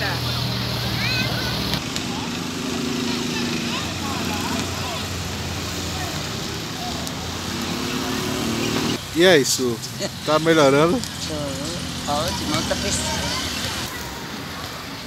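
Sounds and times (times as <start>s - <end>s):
faint distant voices: 0.0s - 15.0s
vehicle engine running: 9.8s - 13.9s.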